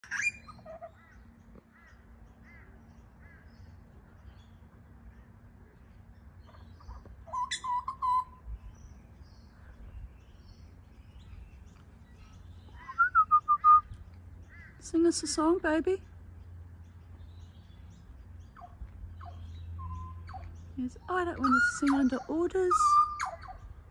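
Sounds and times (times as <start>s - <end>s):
butcherbird calling: 0.0s - 3.5s, 6.4s - 9.4s, 10.3s - 15.4s, 17.4s - 23.9s
bird singing fluty whistles: 7.3s - 8.4s, 12.7s - 14.0s, 22.7s - 23.6s.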